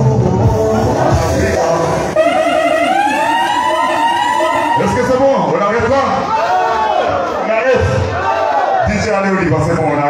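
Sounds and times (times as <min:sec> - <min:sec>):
music: 0:00.0 - 0:03.6
wailing siren over pa system: 0:02.1 - 0:05.3.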